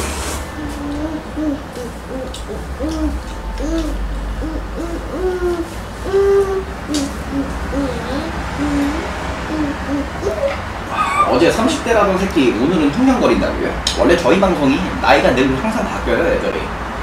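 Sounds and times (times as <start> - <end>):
person humming: 0.5 - 11.3.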